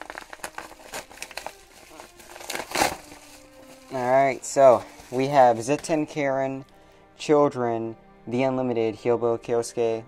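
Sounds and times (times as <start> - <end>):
padded envelope crinkling: 0.0 - 6.0.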